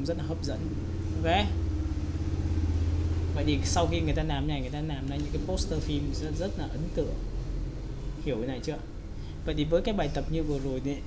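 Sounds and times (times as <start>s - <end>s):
low motor-like drone: 0.0s - 11.0s.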